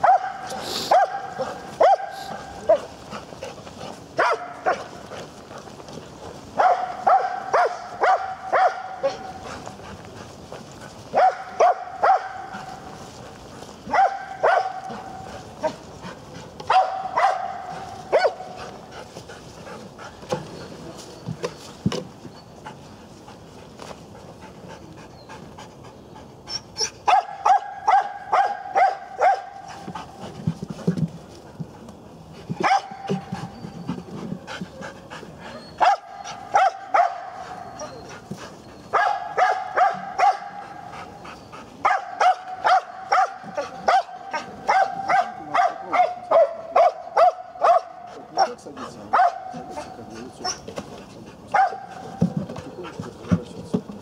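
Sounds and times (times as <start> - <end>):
dog barking: 0.0 - 2.9, 4.2 - 4.9, 6.6 - 9.4, 11.1 - 12.7, 13.9 - 15.0, 16.7 - 18.5, 27.1 - 29.6, 32.6 - 33.2, 35.8 - 37.9, 38.9 - 40.8, 41.8 - 50.6, 51.5 - 52.1
dog panting: 0.0 - 27.0, 29.3 - 53.8.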